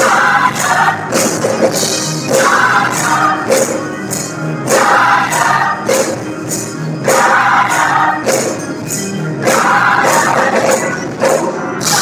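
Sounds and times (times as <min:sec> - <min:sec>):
choir singing gospel song: 0:00.0 - 0:12.0
tambourine beat: 0:00.0 - 0:12.0.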